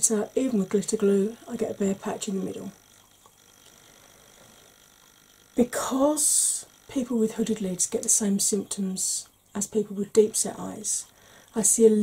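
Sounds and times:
thin high-pitched whine: 0.0 - 12.0.

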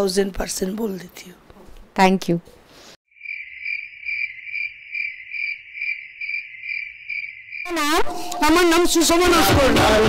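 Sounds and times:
cricket chirping: 3.1 - 7.8.

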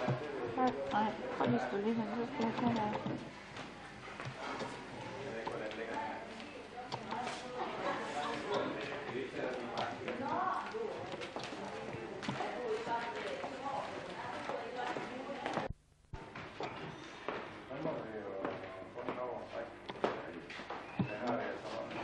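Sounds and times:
indistinct chatter: 0.0 - 22.0.

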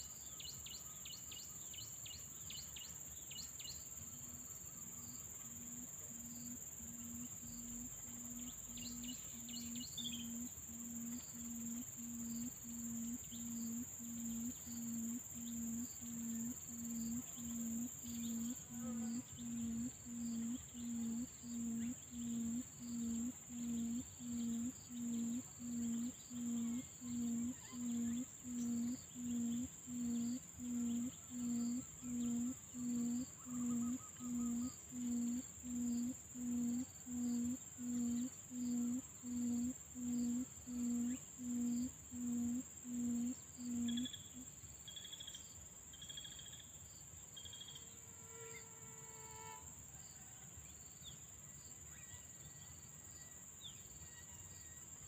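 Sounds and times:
high whine of insects: 0.0 - 55.0.

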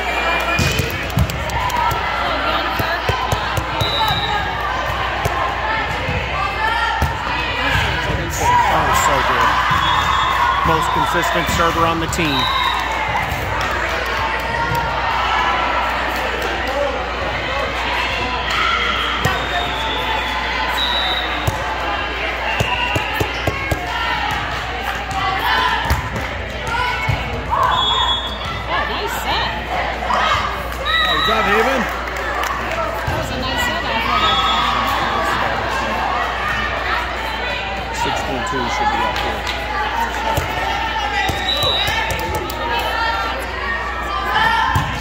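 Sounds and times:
chatter and calls of people: 0.0 - 45.0
balls bouncing on gym floor: 0.5 - 8.4, 22.6 - 27.6.

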